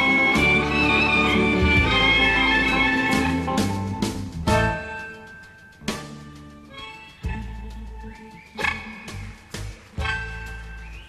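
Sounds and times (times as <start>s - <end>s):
amplified blues harmonica: 0.0s - 3.9s, 6.2s - 9.0s
bass and drums: 0.0s - 11.0s.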